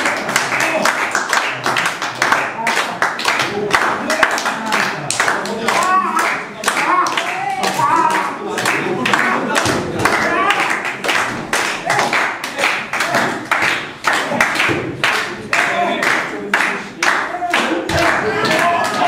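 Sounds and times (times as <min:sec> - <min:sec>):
audience clapping in rhythm: 0:00.0 - 0:19.0.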